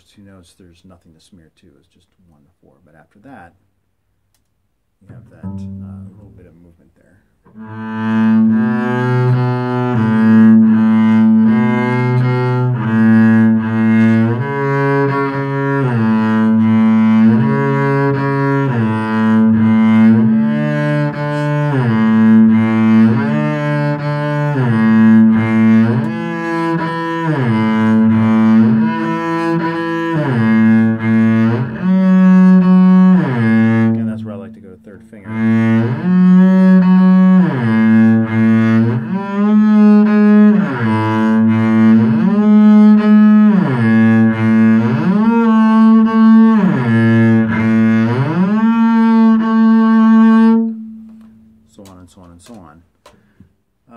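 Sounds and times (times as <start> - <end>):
bowed double bass sliding notes: 5.0 - 6.8, 7.4 - 52.6.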